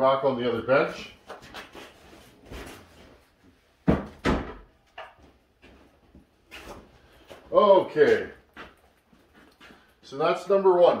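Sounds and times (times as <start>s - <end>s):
small clicks and rustling: 8.1s - 10.0s.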